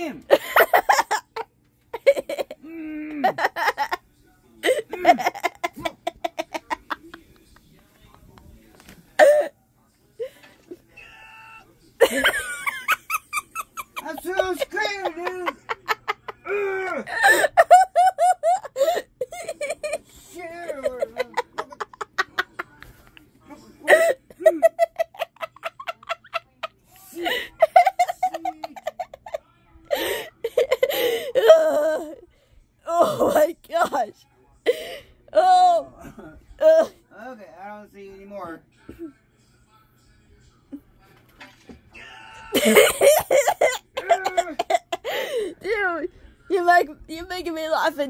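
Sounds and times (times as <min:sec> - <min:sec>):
person giggling: 0:02.0 - 0:04.0, 0:04.6 - 0:07.2, 0:12.0 - 0:22.7, 0:23.8 - 0:32.2, 0:42.5 - 0:45.5
gasping breaths: 0:45.0 - 0:45.6.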